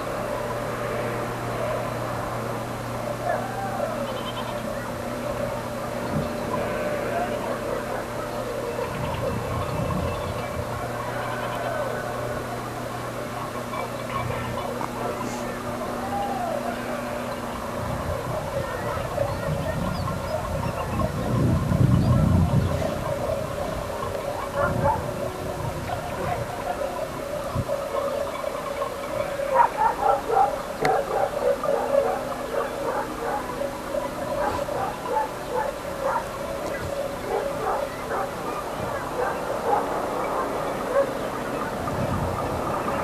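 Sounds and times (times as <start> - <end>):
outdoor background noise: 0.0 - 43.0
animal calls: 3.2 - 43.0.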